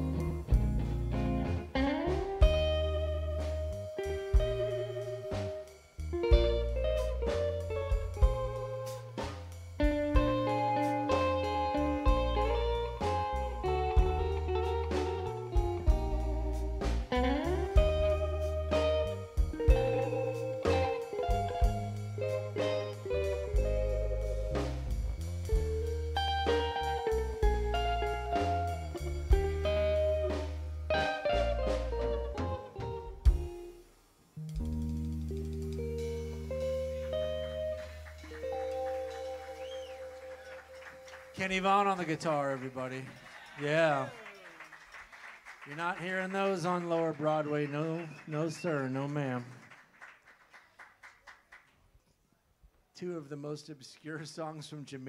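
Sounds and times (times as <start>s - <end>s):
bass guitar: 0.0s - 44.2s
electric guitar solo: 0.0s - 44.8s
drums: 0.0s - 51.6s
held guitar chord ringing: 9.8s - 42.2s.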